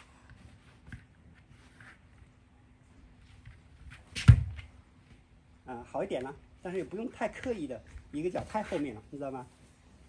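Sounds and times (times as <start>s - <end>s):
faint scuff: 3.3s - 5.2s.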